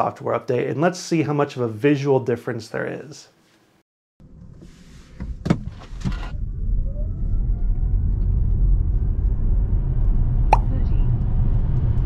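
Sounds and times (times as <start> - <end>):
road and tyre rumble: 8.0 - 12.0.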